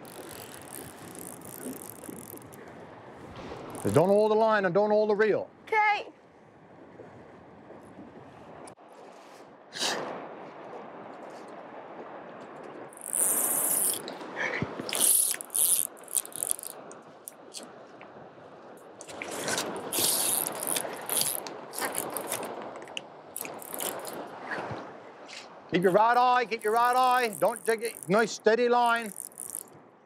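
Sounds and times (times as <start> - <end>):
fishing reel drag buzzing: 0.0 - 2.6, 3.7 - 4.0, 13.0 - 14.1, 14.9 - 16.8, 19.9 - 22.5, 23.4 - 24.2, 26.6 - 29.7
river water washing: 0.0 - 5.8, 8.4 - 30.0.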